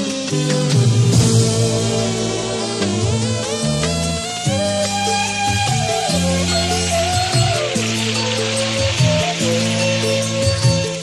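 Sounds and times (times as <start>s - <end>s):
band playing instrumental music: 0.0s - 11.0s
steady hiss: 0.0s - 11.0s.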